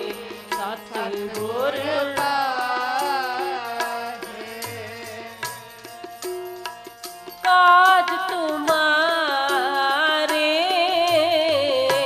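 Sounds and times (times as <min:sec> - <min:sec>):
hand drums: 0:00.0 - 0:12.0
harmonium chords: 0:00.0 - 0:12.0
woman singing a hymn: 0:07.5 - 0:12.0.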